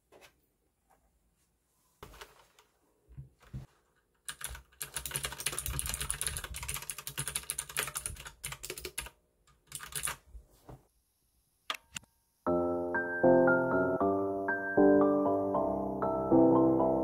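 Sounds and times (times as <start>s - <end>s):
mechanical keyboard typing clicks: 4.2s - 10.2s.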